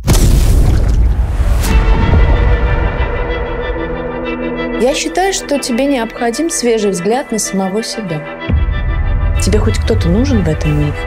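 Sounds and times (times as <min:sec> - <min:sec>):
deep cinematic boom: 0:00.0 - 0:05.3
trailer music: 0:00.0 - 0:11.0.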